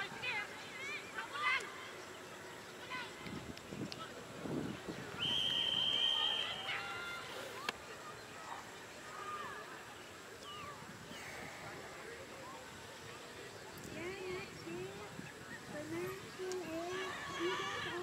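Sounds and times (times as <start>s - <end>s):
faint shouts and voices: 0.0s - 18.0s
referee's whistle blast: 5.2s - 6.7s.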